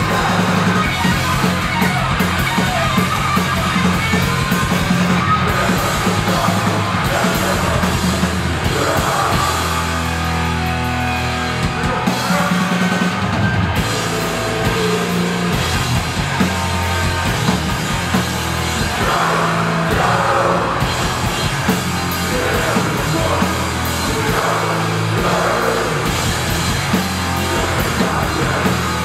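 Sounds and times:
bass low notes: 0.0 - 29.0
distorted electric guitars: 0.0 - 29.0
drum kit with cymbals: 0.0 - 29.0.

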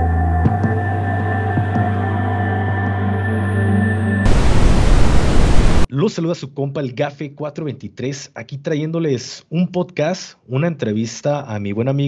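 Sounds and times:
background music: 0.0 - 4.3
static hiss: 4.3 - 5.9
man talking: 5.9 - 12.0.

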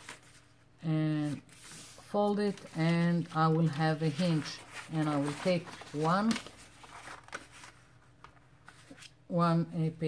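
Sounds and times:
paper sheets rustling: 0.0 - 9.2.

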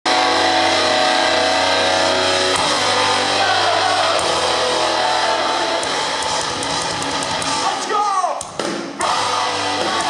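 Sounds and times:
distorted electric guitar chord: 0.1 - 7.6.

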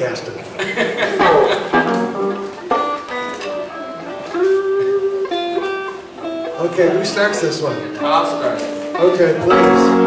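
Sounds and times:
grand piano playing: 1.2 - 10.0.

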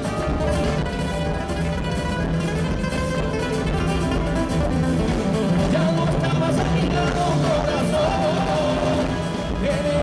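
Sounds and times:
nylon-string acoustic guitar: 0.0 - 9.6
live band playing instrumental music: 0.0 - 10.0.

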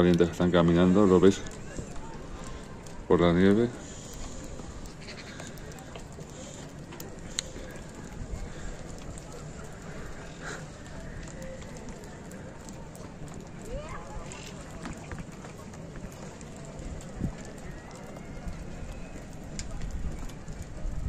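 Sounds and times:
faint distant voices: 0.0 - 21.0.

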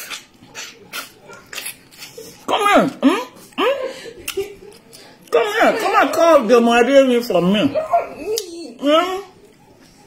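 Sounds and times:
wet slurping and lip-smacking: 0.0 - 2.4.

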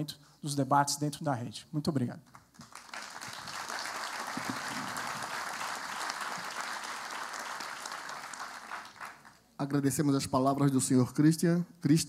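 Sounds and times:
audience applauding: 2.6 - 9.5.

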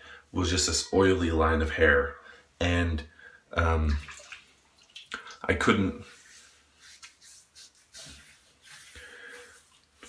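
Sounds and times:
hands swishing over wet scalp: 6.0 - 10.0.

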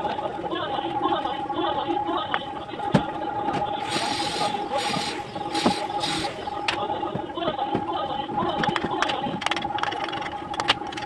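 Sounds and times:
steady high hum: 0.0 - 11.0.

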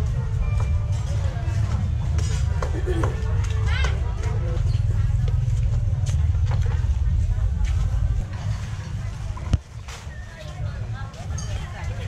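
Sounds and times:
indistinct voices: 0.0 - 12.0
steady low rumble: 0.0 - 12.0.

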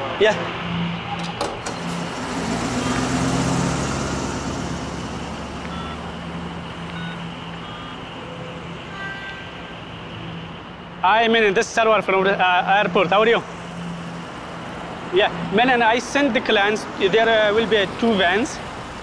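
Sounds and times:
vehicle pulling away: 0.0 - 8.7
low engine hum: 0.0 - 8.8.

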